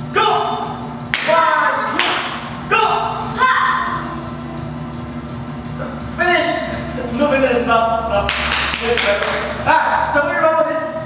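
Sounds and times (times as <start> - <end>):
sharp hand slaps: 1.1 - 2.4, 8.3 - 9.6.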